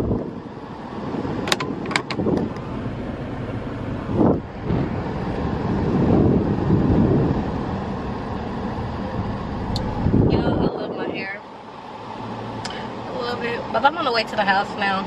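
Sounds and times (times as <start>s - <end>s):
car engine rumble: 0.0s - 15.0s.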